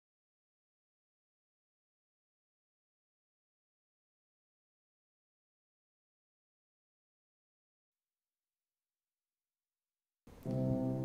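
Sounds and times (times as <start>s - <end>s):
instrumental music held chord: 10.3s - 11.0s.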